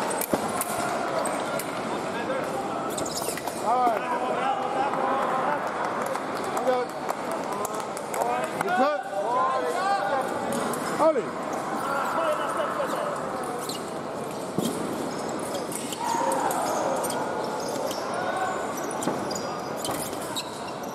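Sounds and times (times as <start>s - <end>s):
voices in large hall: 0.0s - 20.9s
footwork squeaks: 2.9s - 3.6s, 12.9s - 20.9s.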